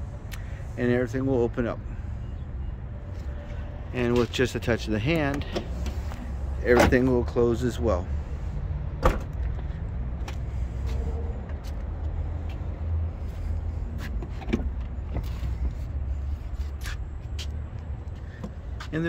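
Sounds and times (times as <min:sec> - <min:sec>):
tailgate latching shut with thud: 0:09.0 - 0:09.4.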